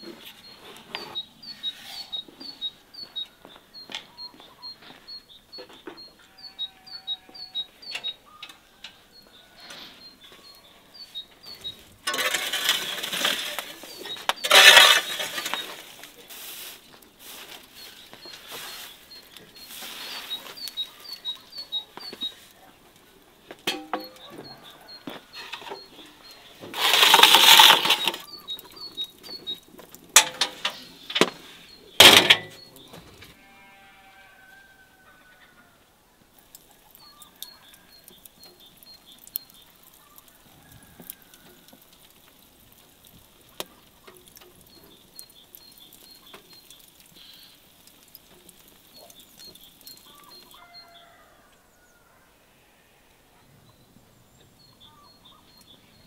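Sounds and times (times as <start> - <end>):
clinks and knocks of handling: 12.0 - 15.8, 23.5 - 24.6, 26.7 - 28.5, 29.8 - 31.4, 32.0 - 32.7.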